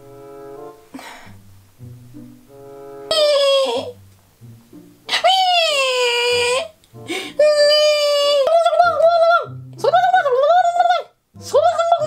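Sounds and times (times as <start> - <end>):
quiet background music: 0.0 - 12.0
baby crying: 3.1 - 4.0.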